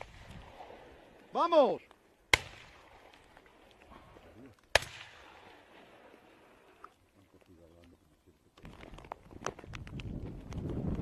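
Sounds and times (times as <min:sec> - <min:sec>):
shotgun shots: 0:02.3 - 0:03.1, 0:04.7 - 0:05.6.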